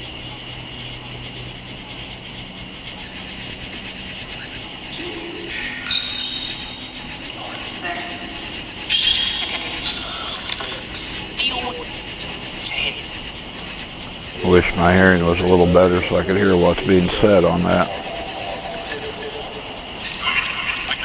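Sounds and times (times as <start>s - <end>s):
crickets chirring: 0.0s - 21.0s.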